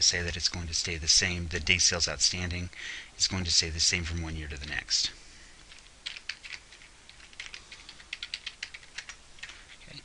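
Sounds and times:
computer keyboard typing: 5.7 - 9.9.

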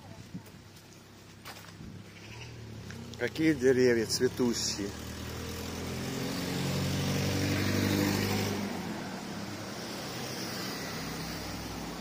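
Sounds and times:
car engine passing: 2.1 - 12.0.

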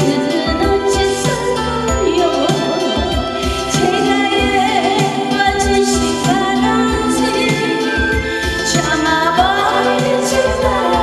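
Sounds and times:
music with a steady beat: 0.0 - 11.0
woman singing into a microphone: 0.0 - 11.0.

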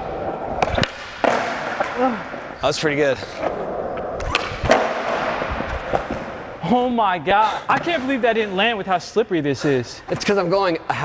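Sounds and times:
skateboard wheels rolling on concrete: 0.0 - 6.7
skateboard clacks: 0.5 - 2.5, 3.4 - 6.5.

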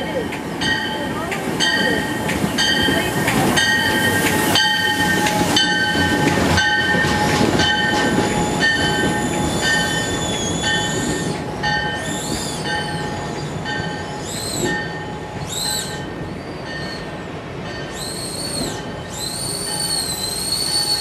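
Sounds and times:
locomotive bell ringing: 0.0 - 18.1
low rumble of train: 0.0 - 21.0.

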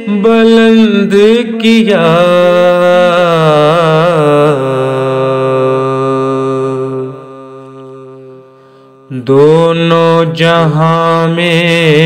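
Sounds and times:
man singing a cappella: 0.0 - 12.0.

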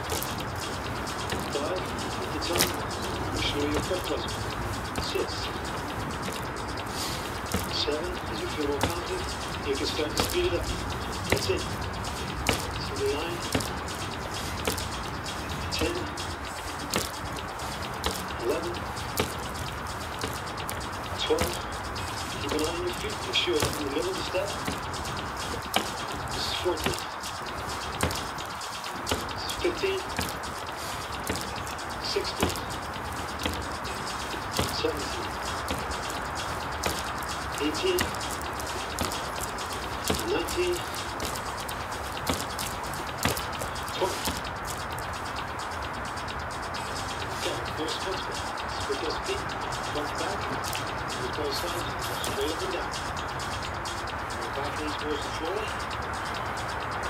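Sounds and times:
bird chirps: 0.0 - 57.0
steady background hiss: 0.0 - 57.0.

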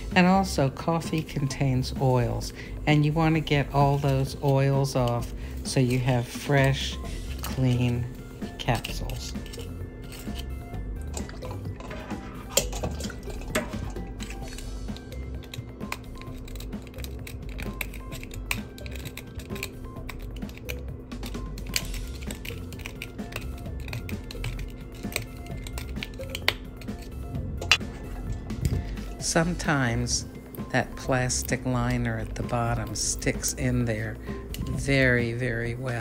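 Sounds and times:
soft background music: 0.0 - 36.0
metal pick clicks and scrapes: 8.6 - 28.8
water dripping and sloshing: 11.1 - 11.9, 12.5 - 14.0.

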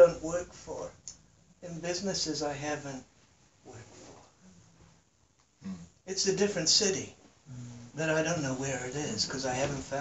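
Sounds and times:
speech: 0.0 - 1.0, 1.6 - 3.1, 5.6 - 10.0
faint murmur and hum: 5.6 - 10.0.

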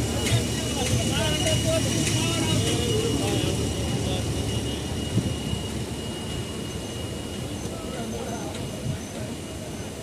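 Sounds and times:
train wheels rumbling on track: 0.0 - 10.0.

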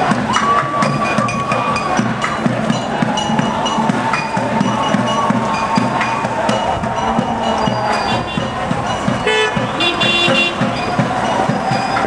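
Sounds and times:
horn toots: 0.0 - 12.0
marching drums: 0.0 - 12.0
voices: 0.0 - 12.0.

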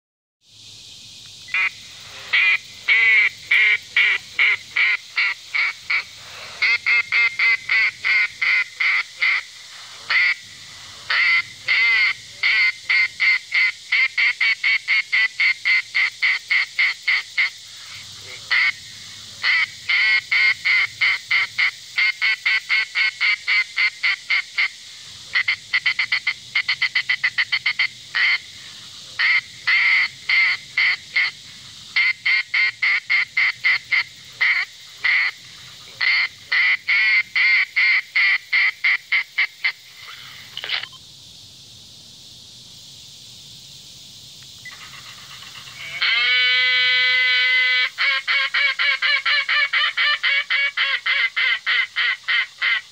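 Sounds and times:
duck call quacking: 1.5 - 9.5, 10.1 - 10.4, 11.1 - 17.5, 18.5 - 18.7, 19.4 - 24.7, 25.4 - 28.4, 29.2 - 31.3, 32.0 - 35.4, 36.0 - 40.8, 44.7 - 52.9.

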